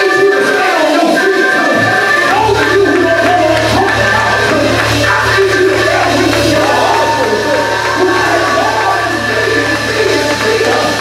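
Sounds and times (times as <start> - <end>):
man singing into a microphone: 0.0 - 11.0
sustained organ-like chords: 1.6 - 11.0
steady low bass: 1.8 - 11.0.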